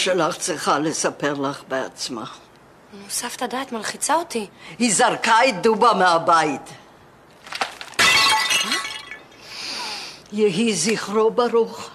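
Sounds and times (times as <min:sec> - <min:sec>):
glass shattering crash: 0:07.4 - 0:09.4.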